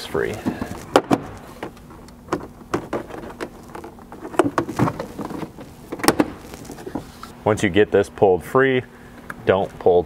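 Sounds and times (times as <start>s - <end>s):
plastic panel clicking and knocking: 2.3s - 6.4s.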